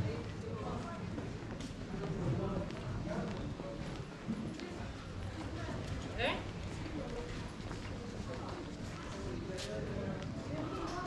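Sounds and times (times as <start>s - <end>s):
passers-by talking: 0.0s - 11.0s.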